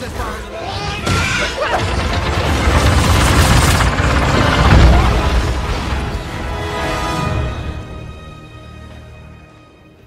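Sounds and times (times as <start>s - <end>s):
orchestral score: 0.0s - 10.0s
deep rumbling battle din: 1.0s - 7.2s.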